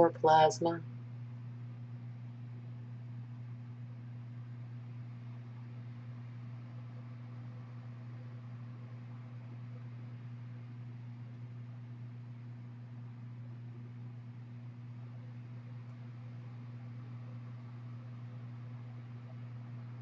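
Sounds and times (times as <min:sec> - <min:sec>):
low hum with faint hiss: 0:00.0 - 0:20.0.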